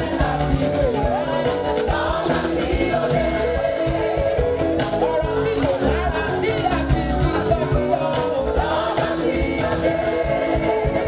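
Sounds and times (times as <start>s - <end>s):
backing choir: 0.0s - 11.0s
band with bass guitar: 0.0s - 11.0s
person singing gospel: 0.0s - 11.0s.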